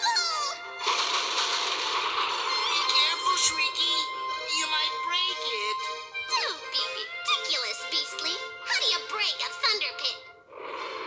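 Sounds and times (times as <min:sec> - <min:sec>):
cartoon music with wavering notes: 0:00.0 - 0:00.8, 0:02.0 - 0:10.4.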